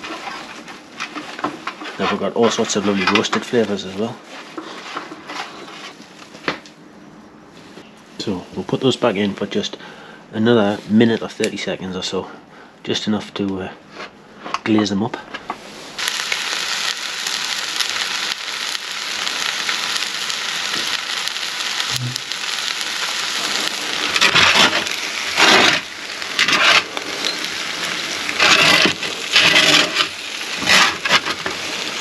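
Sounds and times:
meat sizzling in roasting tray: 0.0 - 6.0, 15.6 - 32.0.

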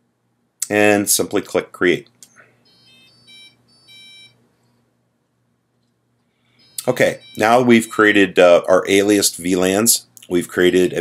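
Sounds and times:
short high electronic beeps: 2.6 - 4.4, 6.6 - 8.2.

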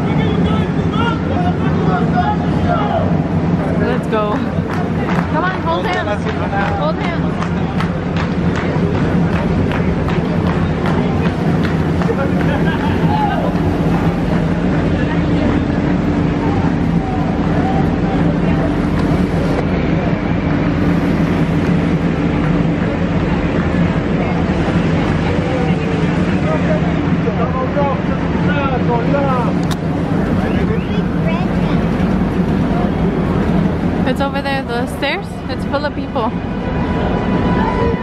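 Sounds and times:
crowd chatter: 0.0 - 38.0
traffic hum: 0.0 - 38.0.

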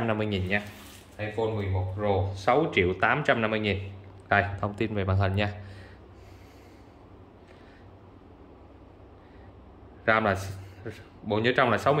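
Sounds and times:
soft breathing through nose: 5.6 - 8.2, 9.1 - 9.8.

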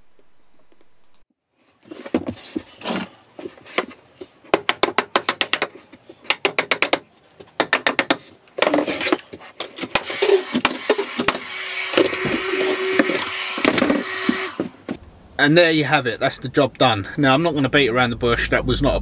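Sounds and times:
rasping with steady squeal: 10.1 - 14.9.

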